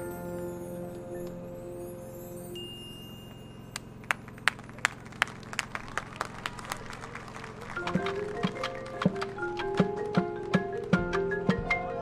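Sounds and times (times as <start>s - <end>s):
percussion clicks in steady beat: 7.7s - 12.0s.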